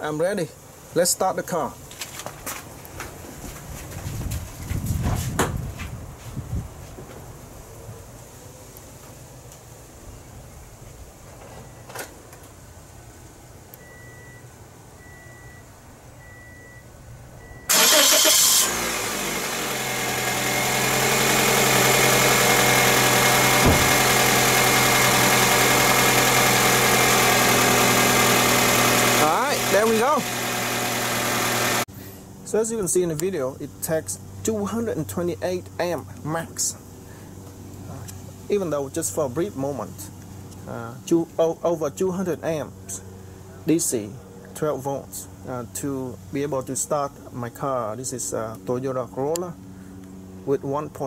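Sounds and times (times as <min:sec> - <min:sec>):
car engine starter cranking: 0:17.7 - 0:31.8
car engine idling: 0:17.7 - 0:31.9.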